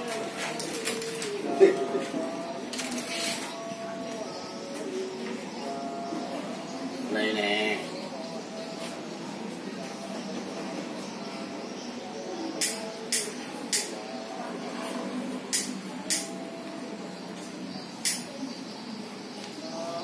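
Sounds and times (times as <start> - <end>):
murmur of distant voices: 0.0 - 20.0.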